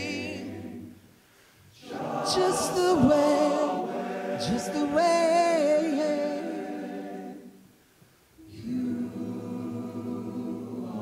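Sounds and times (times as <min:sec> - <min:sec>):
men's choir holding a chord: 0:01.8 - 0:07.6, 0:08.5 - 0:11.0.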